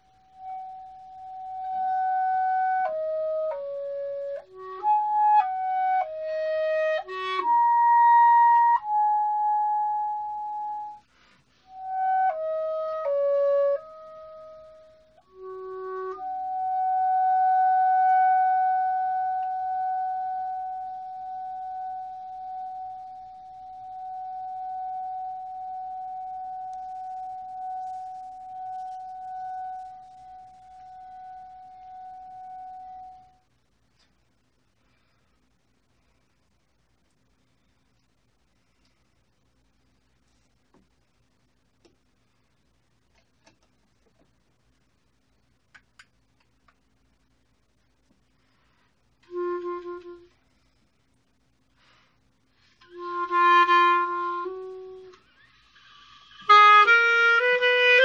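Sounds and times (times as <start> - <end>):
clarinet playing slow melody: 0.0 - 33.5, 49.2 - 50.7, 52.7 - 58.0.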